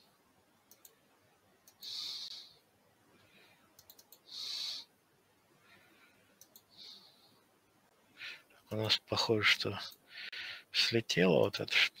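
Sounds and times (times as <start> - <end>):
computer mouse clicks: 0.7 - 1.0, 1.6 - 2.1, 3.7 - 4.3, 6.4 - 6.7.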